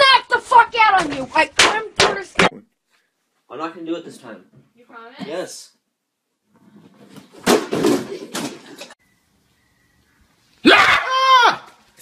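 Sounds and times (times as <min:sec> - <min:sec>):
knocks and bangs: 0:00.9 - 0:02.6
person screaming: 0:10.6 - 0:11.8.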